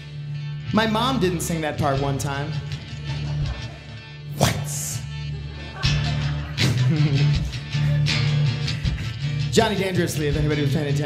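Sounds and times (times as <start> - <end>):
guitar strumming chords: 0.0 - 11.0.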